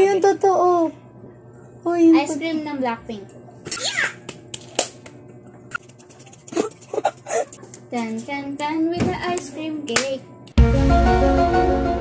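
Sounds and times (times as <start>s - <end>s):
hand claps and snaps: 4.2s - 5.2s, 9.3s - 10.6s.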